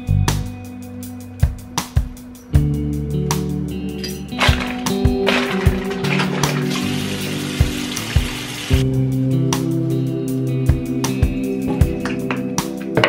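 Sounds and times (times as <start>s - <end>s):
guitar music with drum beat: 0.0s - 13.0s
sink tap running: 4.4s - 8.8s.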